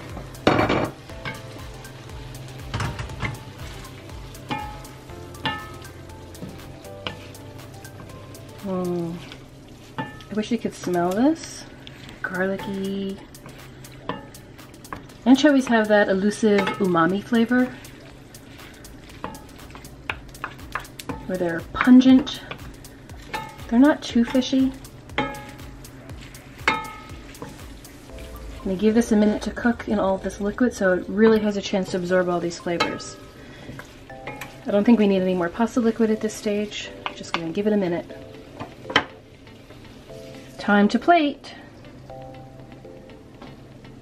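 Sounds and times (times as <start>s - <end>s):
sauce sizzling in a pan: 0.0s - 44.0s
spoons knocking against pan: 26.6s - 27.6s.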